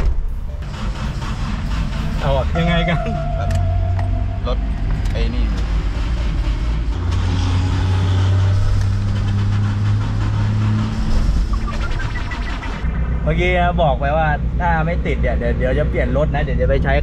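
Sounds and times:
engine starting and running: 0:00.0 - 0:16.2.

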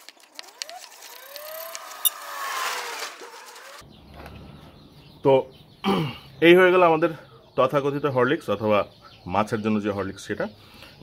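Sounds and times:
short gliding squeaks: 0:00.4 - 0:03.8.

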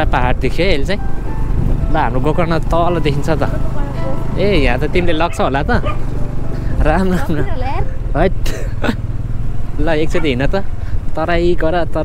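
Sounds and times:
motor scooter running on dirt road: 0:00.0 - 0:11.1
people talking: 0:06.8 - 0:08.6.

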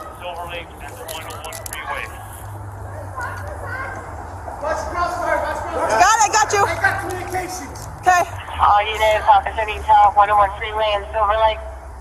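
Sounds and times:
sharp crackles: 0:00.0 - 0:02.6
indistinct voices: 0:00.0 - 0:11.7.

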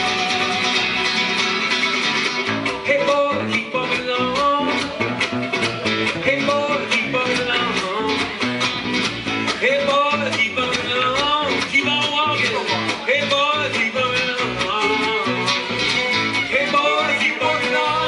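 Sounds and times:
plucked bass: 0:00.0 - 0:18.0
strummed acoustic guitar: 0:00.0 - 0:18.0.

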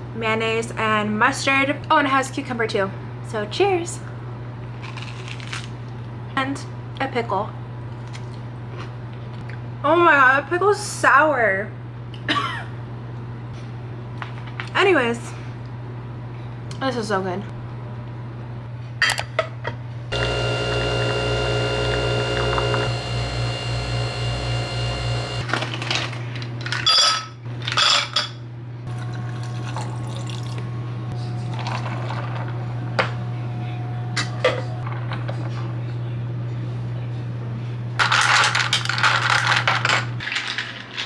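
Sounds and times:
coffee machine humming: 0:20.1 - 0:25.6, 0:28.9 - 0:36.2
liquid poured into a glass: 0:29.0 - 0:30.6.

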